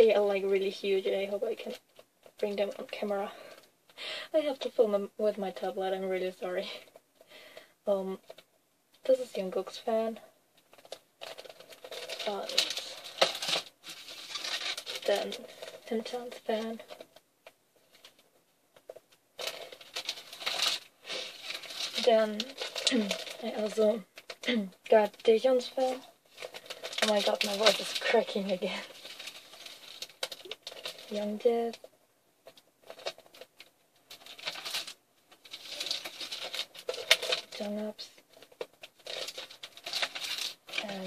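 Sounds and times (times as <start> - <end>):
plastic packaging crinkling: 10.6 - 41.0.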